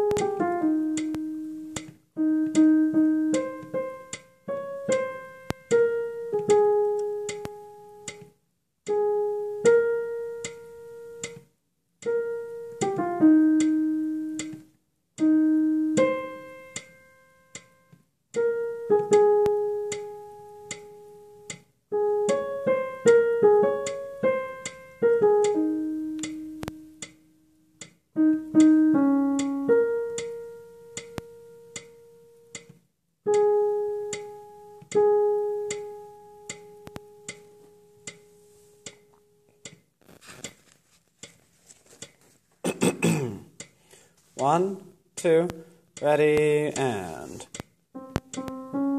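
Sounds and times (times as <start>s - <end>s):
piano notes: 0.0s - 8.3s, 8.9s - 32.7s, 33.3s - 39.7s, 44.4s - 48.9s
metronome ticking: 0.0s - 42.3s, 42.9s - 48.9s.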